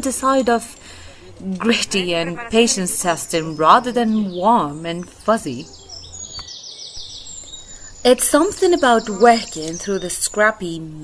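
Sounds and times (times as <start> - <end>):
songbird singing: 0.0 - 11.0.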